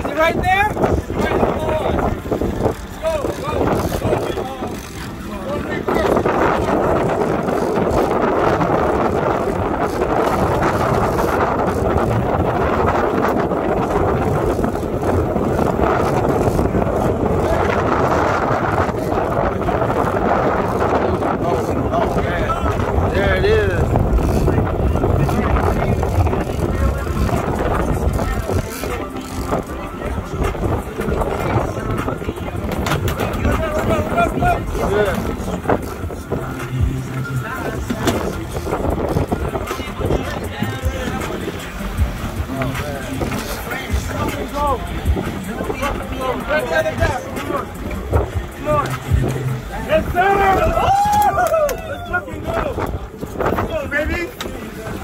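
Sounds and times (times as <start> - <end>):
boat engine running: 0.0 - 55.0
indistinct voices: 0.0 - 55.0
water splashing: 0.0 - 55.0
wind: 0.0 - 55.0.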